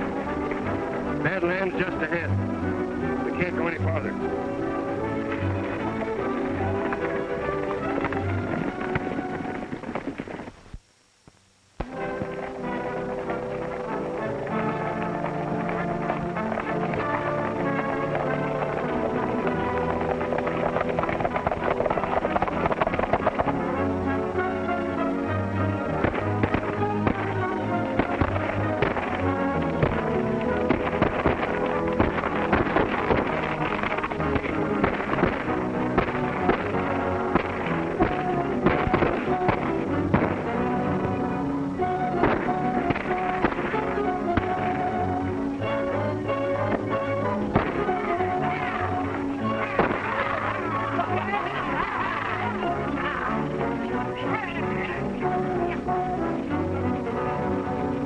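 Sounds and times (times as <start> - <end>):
dramatic film score music: 0.0 - 10.2, 11.8 - 58.0.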